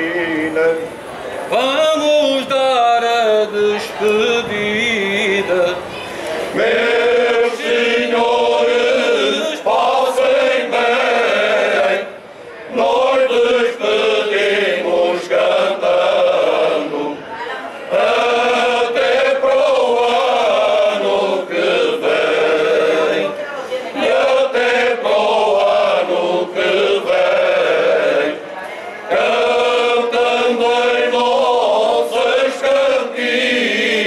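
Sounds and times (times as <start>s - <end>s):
male choir singing unaccompanied: 0.0s - 17.3s, 17.9s - 34.0s.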